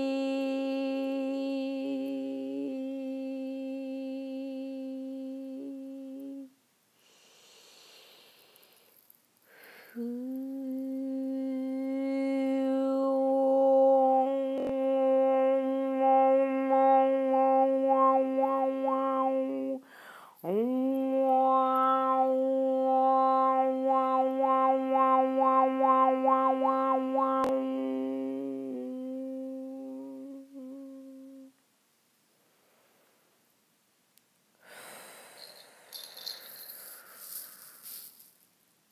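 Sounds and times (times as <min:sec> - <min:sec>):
person humming a long note: 0:00.0 - 0:06.6, 0:09.8 - 0:31.6.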